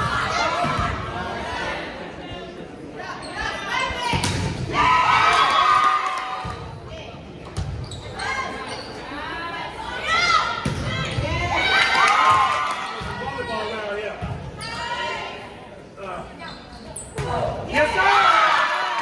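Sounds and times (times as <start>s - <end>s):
volleyball smack: 4.1s - 4.7s.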